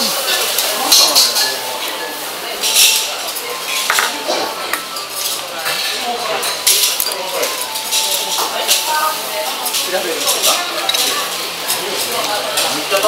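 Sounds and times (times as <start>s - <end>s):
chatter of voices: 0.0s - 13.0s
dishes and cutlery clinking: 0.0s - 13.0s.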